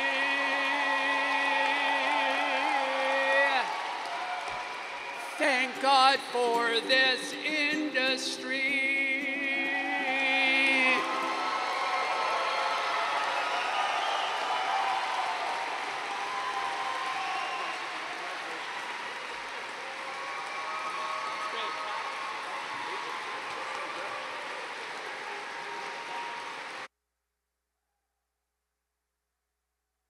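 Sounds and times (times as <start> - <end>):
shouts and voices: 0.0 - 8.4
audience applauding: 0.0 - 26.9.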